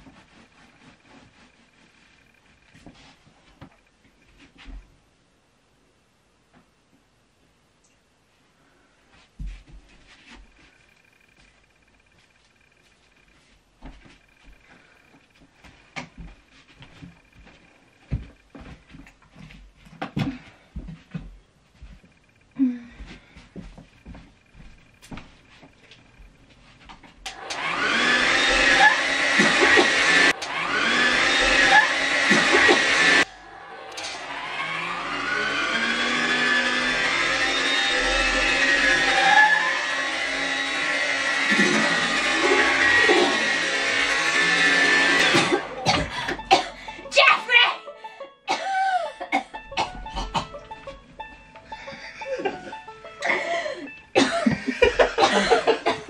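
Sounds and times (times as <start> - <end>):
hair dryer running: 27.3 - 47.6, 49.8 - 56.0
background music: 45.2 - 56.0.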